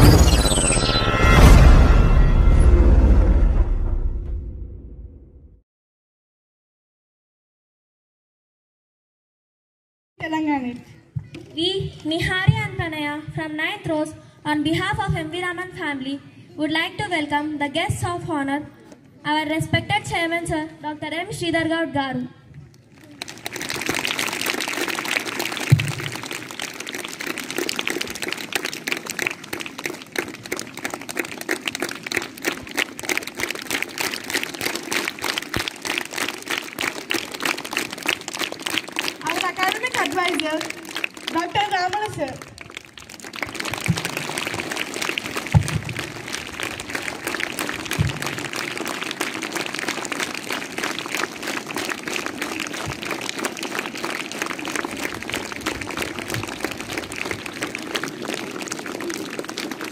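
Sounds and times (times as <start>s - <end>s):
audience applauding: 22.8s - 59.9s
thump: 45.5s - 46.0s.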